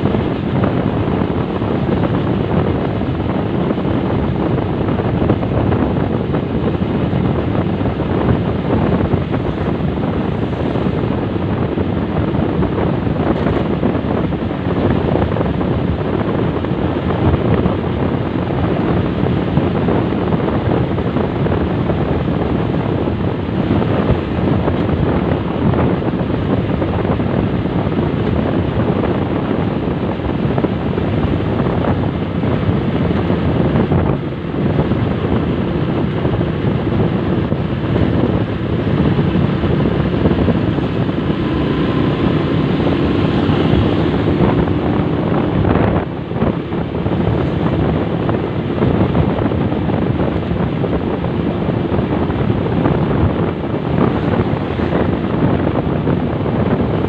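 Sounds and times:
motorcycle engine running: 0:00.0 - 0:57.0
wind buffeting microphone: 0:00.0 - 0:57.0.

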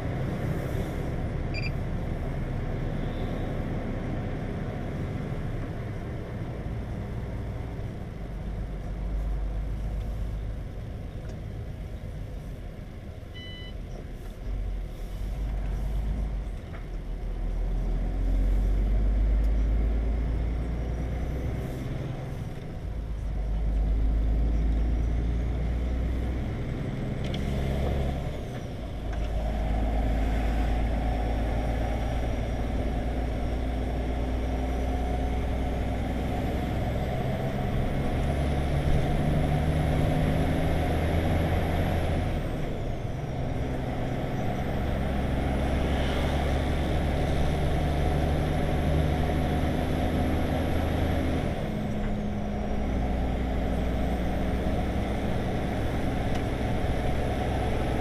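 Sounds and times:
truck diesel engine under load: 0:00.0 - 0:58.0.

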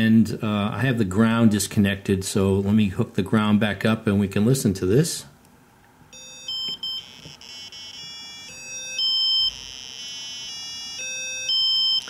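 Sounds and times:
buzzy square-wave notes from small speaker: 0:06.2 - 0:12.0.

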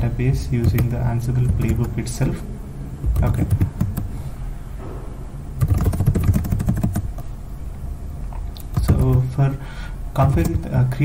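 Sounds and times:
steady low hum: 0:00.0 - 0:11.0
computer keyboard typing: 0:00.6 - 0:02.0, 0:03.0 - 0:04.1, 0:05.6 - 0:07.2, 0:08.6 - 0:09.3, 0:10.2 - 0:10.7.

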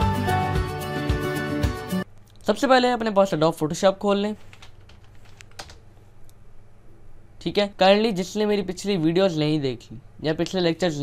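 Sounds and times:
low steady hum: 0:02.0 - 0:11.0
faint keyboard keystrokes: 0:04.4 - 0:06.4.

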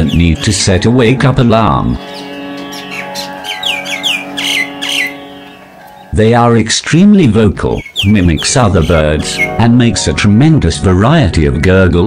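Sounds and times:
soft background music: 0:00.0 - 0:12.0
mynas calling harshly: 0:02.0 - 0:06.2.

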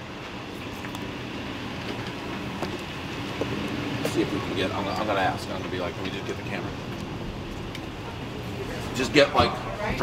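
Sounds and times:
road traffic hum: 0:00.0 - 0:10.0.

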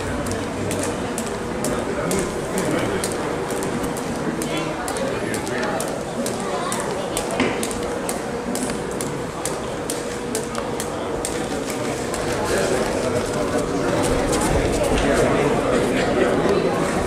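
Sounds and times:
jump rope slapping canvas: 0:00.0 - 0:15.1
murmur of voices: 0:00.0 - 0:17.0.

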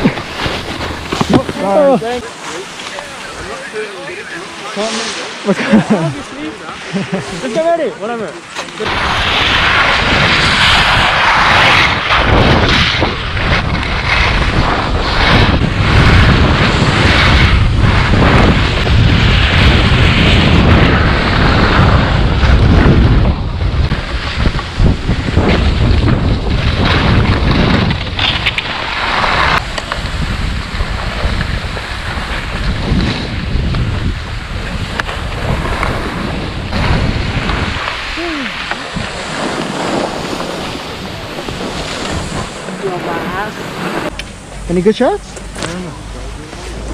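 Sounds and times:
wind rumbling on microphone: 0:00.0 - 0:04.2, 0:08.8 - 0:46.9
skis scraping on snow: 0:00.0 - 0:46.9.

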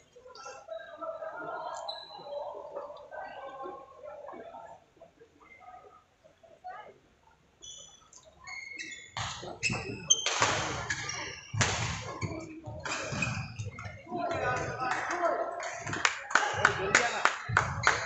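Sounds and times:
voices: 0:00.0 - 0:07.5, 0:08.3 - 0:18.0
shoes squeaking on court: 0:07.6 - 0:14.1.

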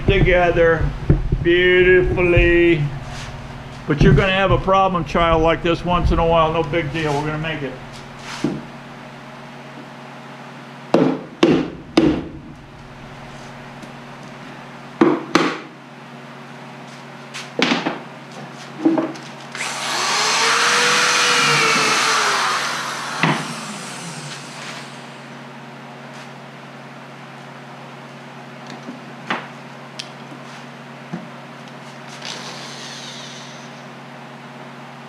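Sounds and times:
power drill running: 0:19.5 - 0:25.4.

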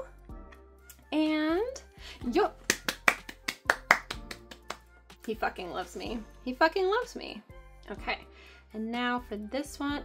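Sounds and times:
hand claps: 0:02.6 - 0:05.4.

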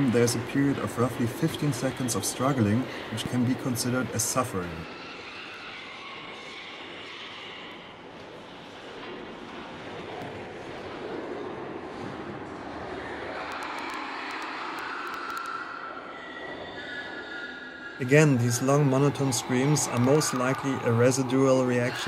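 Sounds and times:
pigs screaming: 0:00.0 - 0:08.1, 0:12.8 - 0:22.0
machinery noise: 0:00.0 - 0:16.1, 0:16.7 - 0:22.0.

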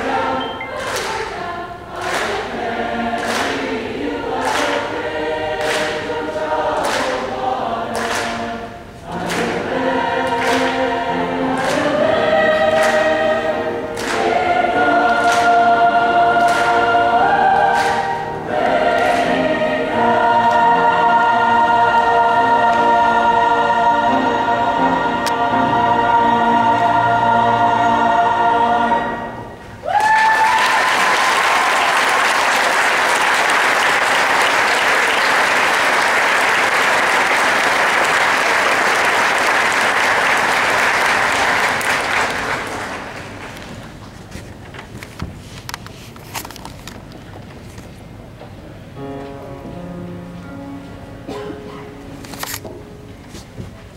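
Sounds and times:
mixed choir singing: 0:00.0 - 0:30.0
audience applause: 0:29.9 - 0:43.6.

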